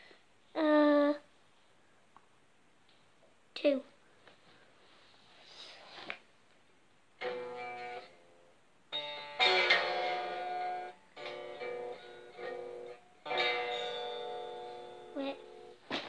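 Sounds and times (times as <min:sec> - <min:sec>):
electric guitar chords strummed: 0:07.2 - 0:15.8.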